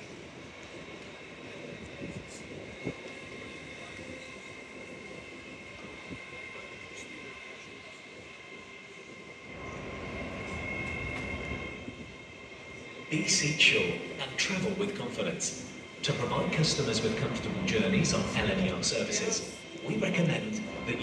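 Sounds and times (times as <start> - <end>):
rail noise: 0.0 - 21.0
train high-pitched whine: 0.0 - 21.0
train low rumble: 0.0 - 21.0.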